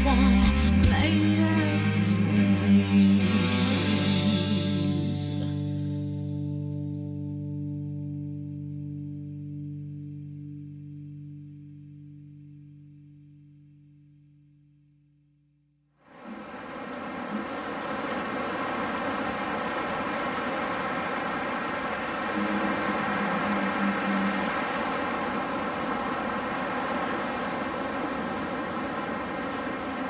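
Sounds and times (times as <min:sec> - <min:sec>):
ocean surf breaking: 0:16.1 - 0:30.0
sustained music chord ringing: 0:16.2 - 0:30.0.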